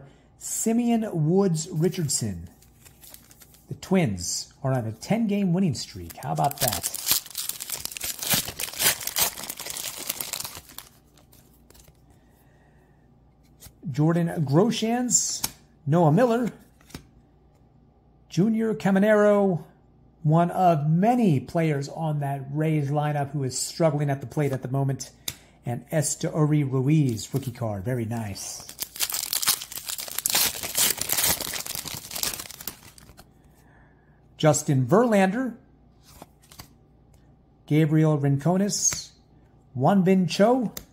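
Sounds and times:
plastic wrapper tearing and crinkling: 0:06.0 - 0:11.9, 0:28.6 - 0:33.2.

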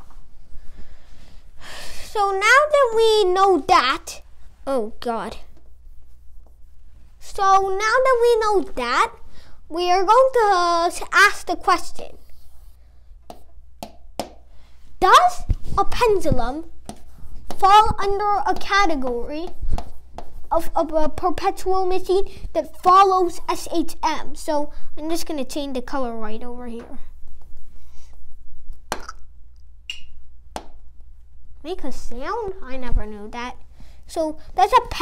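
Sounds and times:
stylus tapping on screen: 0:13.2 - 0:14.4, 0:29.9 - 0:30.8.

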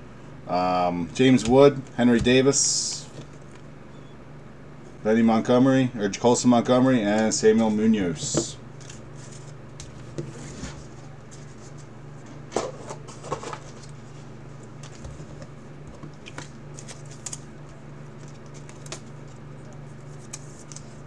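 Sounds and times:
steady low hum: 0:00.0 - 0:21.0
cards rustling and flicking: 0:12.5 - 0:14.0, 0:14.7 - 0:21.0.

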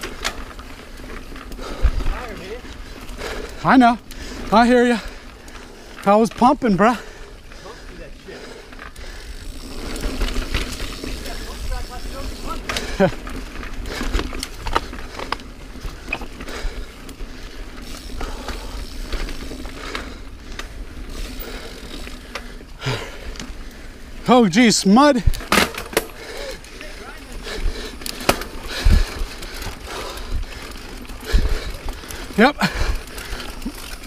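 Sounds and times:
bike tyres on dirt trail: 0:00.0 - 0:34.0.

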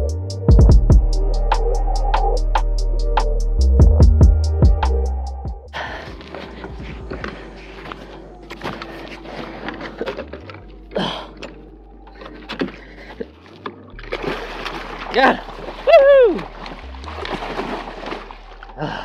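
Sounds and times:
background music: 0:00.0 - 0:19.0
water splashing and sloshing: 0:05.8 - 0:19.0.

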